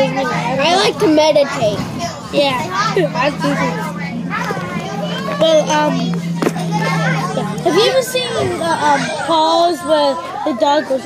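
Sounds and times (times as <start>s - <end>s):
children talking: 0.0s - 11.0s
steady low hum: 0.0s - 11.0s.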